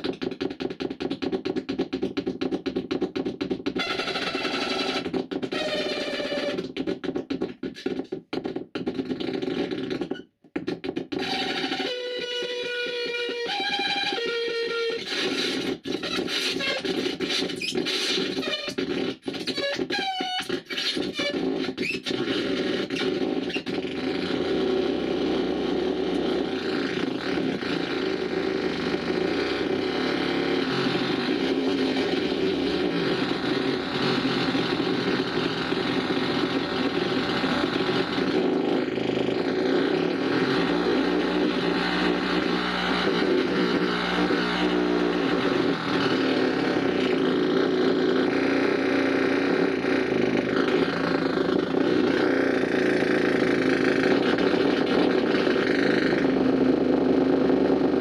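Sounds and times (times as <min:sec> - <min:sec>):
electronic noise drone: 0:03.7 - 0:06.8, 0:10.9 - 0:58.0.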